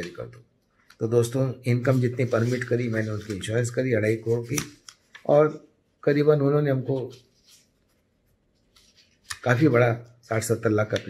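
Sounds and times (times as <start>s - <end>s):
man speaking: 0.0s - 0.4s, 1.0s - 7.3s, 9.4s - 11.0s.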